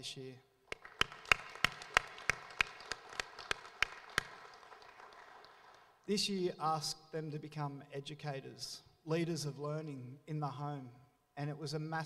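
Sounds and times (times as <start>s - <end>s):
audience applause: 0.7s - 5.9s
sharp claps of one person: 0.7s - 5.9s.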